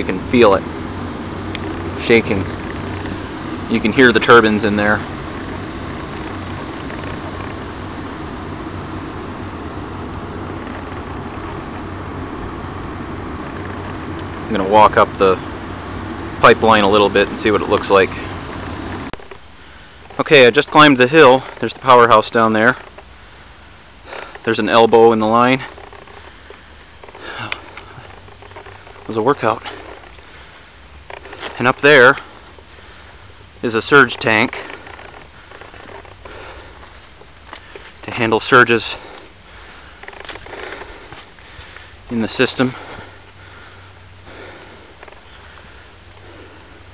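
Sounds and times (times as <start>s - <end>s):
footsteps on dirt path: 0.0s - 46.9s
steady low rumble: 0.0s - 46.9s
turbines running: 0.0s - 46.9s
person breathing hard: 36.2s - 38.0s, 39.0s - 42.1s, 42.7s - 46.9s.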